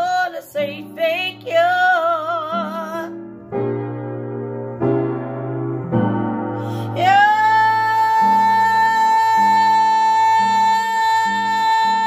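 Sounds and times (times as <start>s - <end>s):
woman singing gospel: 0.0s - 3.1s, 6.8s - 12.0s
piano chords: 0.0s - 12.0s.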